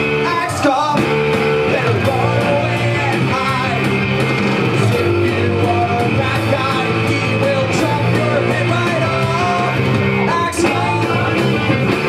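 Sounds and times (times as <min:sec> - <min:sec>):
man singing: 0:00.0 - 0:04.0, 0:04.7 - 0:12.0
punk rock electric guitar: 0:00.0 - 0:12.0.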